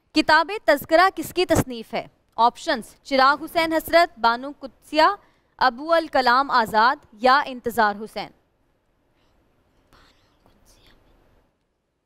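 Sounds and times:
faint whispers: 9.1 - 11.2.

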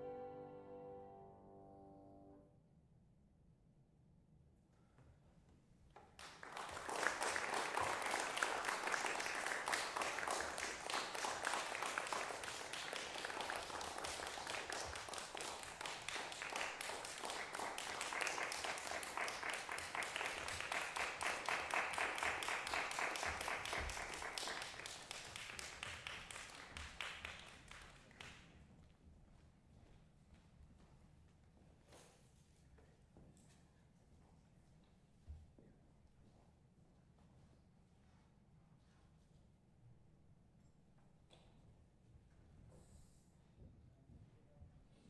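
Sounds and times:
audience applauding: 6.2 - 28.4.

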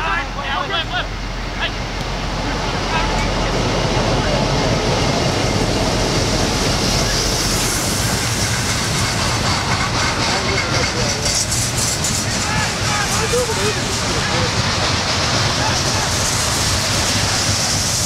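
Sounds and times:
distant players shouting: 12.4 - 13.7.

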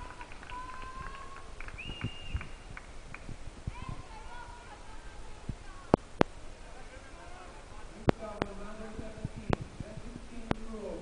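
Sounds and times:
hand claps: 0.0 - 3.3.

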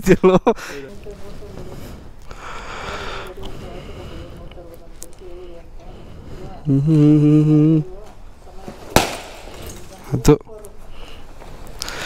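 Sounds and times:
firecracker bang: 8.9 - 9.8.

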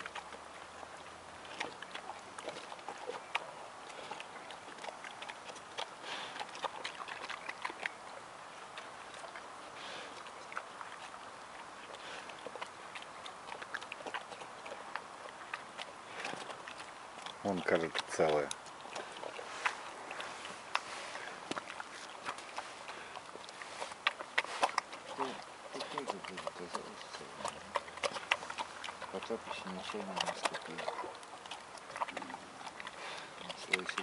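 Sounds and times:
bear chewing wet smacking: 0.0 - 34.0.

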